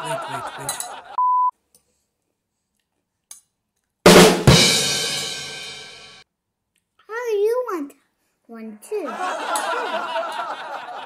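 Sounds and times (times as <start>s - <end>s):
drum hits: 4.1s - 6.2s.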